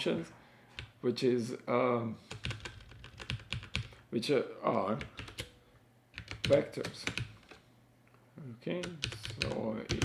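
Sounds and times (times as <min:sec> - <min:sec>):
typing on computer keyboard: 0:02.3 - 0:04.0, 0:05.0 - 0:05.6, 0:06.2 - 0:07.6, 0:08.8 - 0:10.0.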